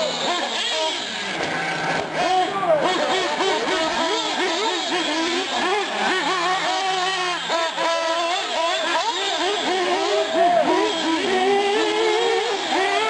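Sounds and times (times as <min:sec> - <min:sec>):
rc car engines revving: 0:00.0 - 0:13.0.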